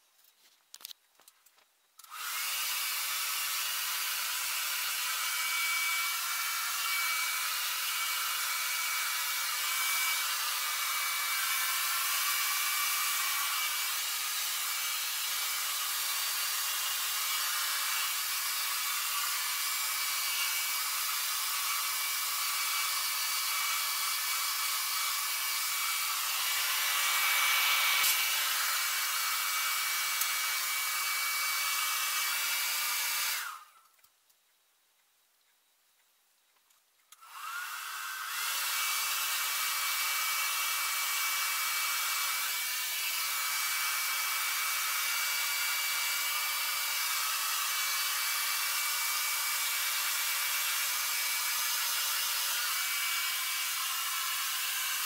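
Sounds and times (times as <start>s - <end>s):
hair dryer blowing: 2.0s - 33.8s, 37.1s - 55.0s.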